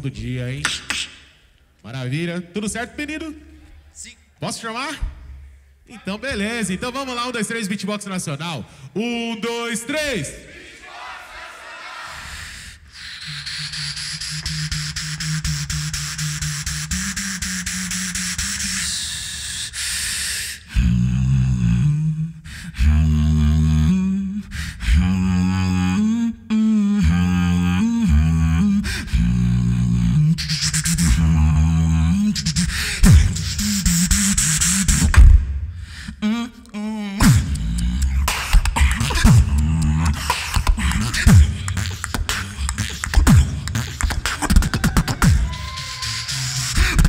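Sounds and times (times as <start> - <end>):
person beatboxing into a microphone: 0.0 - 2.0, 12.6 - 47.0.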